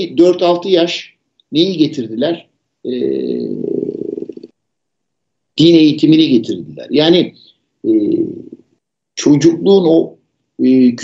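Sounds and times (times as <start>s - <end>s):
man's drawn-out hesitation sound: 0.0s - 4.6s, 5.6s - 8.6s, 9.2s - 11.0s.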